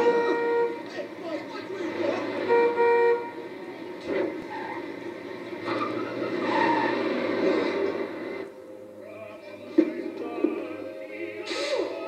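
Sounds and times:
horn-like tone: 0.0s - 1.0s, 2.0s - 3.5s
car horn: 0.0s - 4.9s
passing vehicles: 0.0s - 12.0s.

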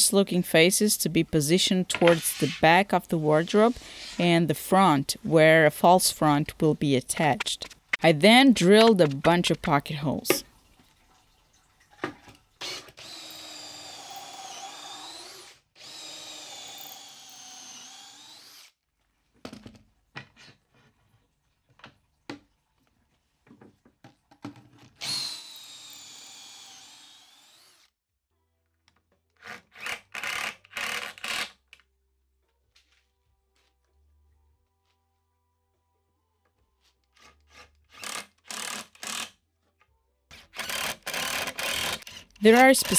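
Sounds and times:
cordless drill whining: 12.6s - 18.7s.

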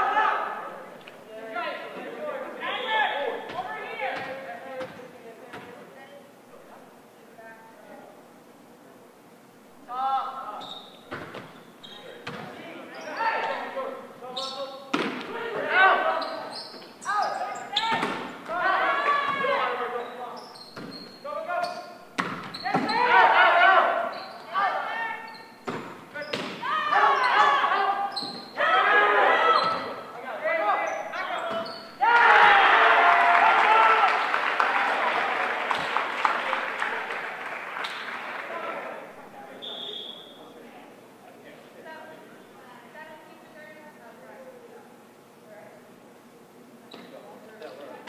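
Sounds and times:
team cheering and yelling: 0.0s - 0.9s, 15.3s - 16.5s, 17.1s - 20.0s, 22.7s - 25.3s, 26.6s - 39.2s
players shouting calls: 0.0s - 4.6s, 11.8s - 40.6s
volleyball smacks echoing: 14.9s - 15.4s, 17.9s - 18.6s, 22.1s - 23.0s, 25.6s - 26.7s, 35.7s - 36.1s.

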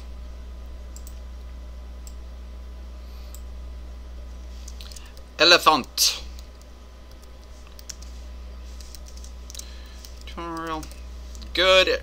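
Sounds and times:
keyboard keys clicking: 6.5s - 8.1s, 8.8s - 11.5s.

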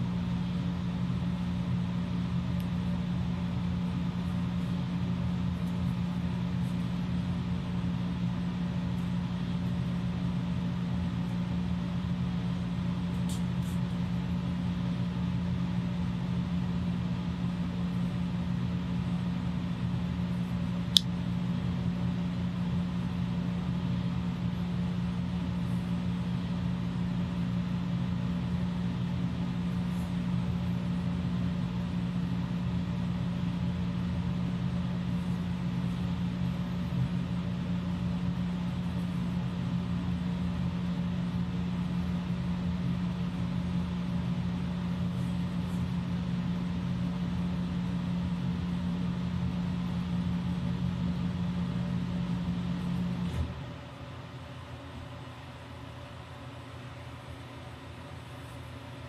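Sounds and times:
appliance humming: 0.0s - 59.0s.

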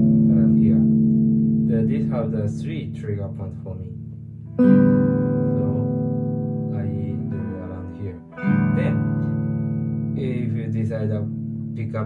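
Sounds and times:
clean electric guitar chords: 0.0s - 12.0s.

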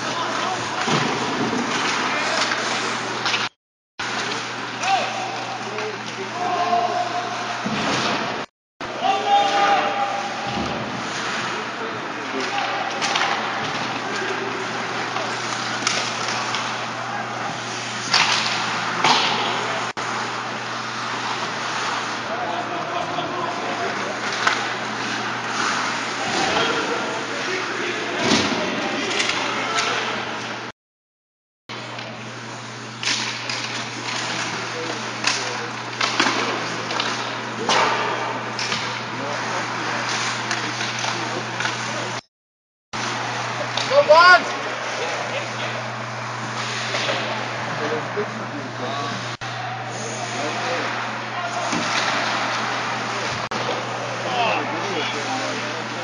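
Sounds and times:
indistinct player shouts: 8.9s - 10.5s.

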